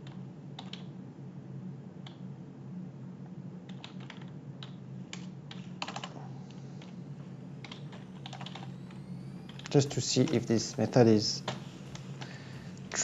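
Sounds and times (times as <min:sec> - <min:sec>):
typing on computer keyboard: 0:00.0 - 0:00.9, 0:03.7 - 0:06.2, 0:07.6 - 0:08.7
low steady hum: 0:00.0 - 0:13.0.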